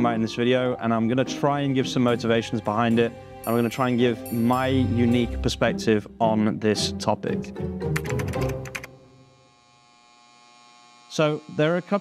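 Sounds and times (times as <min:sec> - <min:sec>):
faint electronic buzzing hum: 0:09.0 - 0:12.0.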